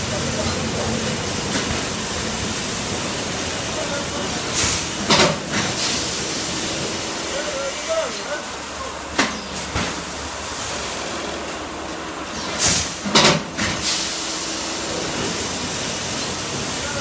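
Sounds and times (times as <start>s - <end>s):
packaging machinery hissing: 12.3s - 17.0s.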